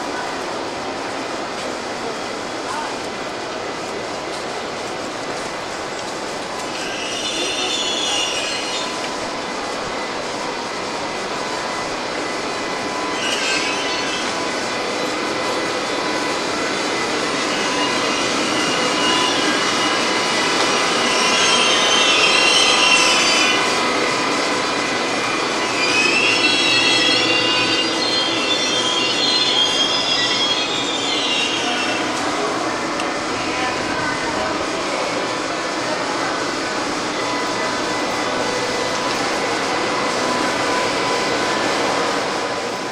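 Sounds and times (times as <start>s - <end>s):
train wheels rumbling on rails: 0.0s - 42.9s
high-pitched flange squeal: 6.7s - 9.1s, 12.9s - 14.5s, 17.4s - 20.2s, 20.8s - 23.8s, 25.3s - 32.2s.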